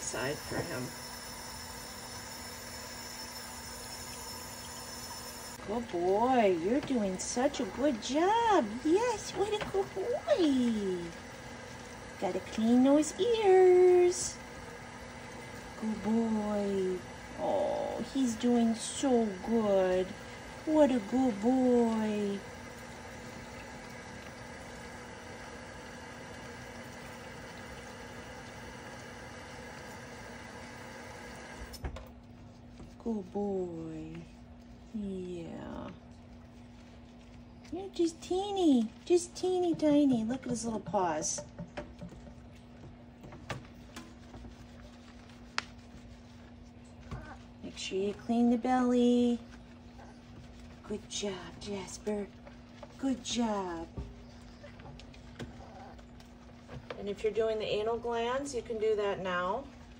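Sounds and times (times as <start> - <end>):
faint low hum: 15.3 - 59.9.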